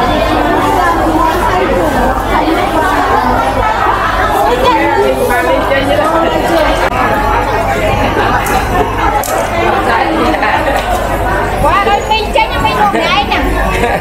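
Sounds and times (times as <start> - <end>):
market crowd chatter: 0.0 - 14.0.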